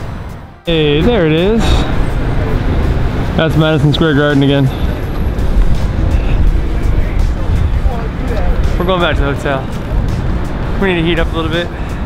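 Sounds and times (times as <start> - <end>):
background music: 0.0 - 12.0
street traffic rumble: 0.0 - 12.0.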